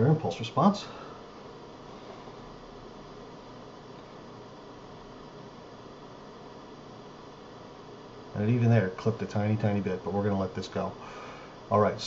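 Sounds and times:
low hiss of microphone noise: 0:00.0 - 0:12.0.

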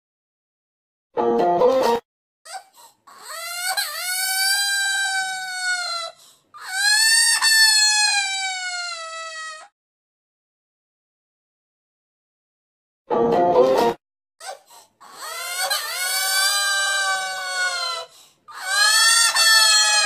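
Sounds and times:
high-pitched cartoon wailing cries: 0:02.5 - 0:09.7, 0:14.4 - 0:20.0.

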